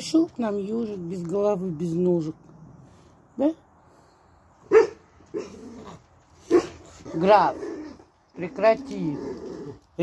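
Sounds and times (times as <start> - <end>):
dog barking: 4.6 - 5.6, 6.5 - 6.8.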